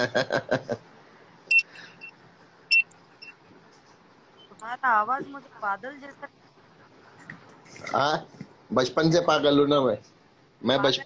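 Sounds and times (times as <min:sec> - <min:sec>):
high electronic beeps: 0:01.5 - 0:03.4.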